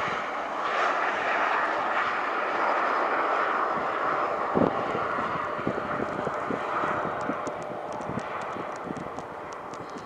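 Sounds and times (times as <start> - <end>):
jet engine hiss: 0.0 - 10.0
wind buffeting microphone: 0.0 - 10.0.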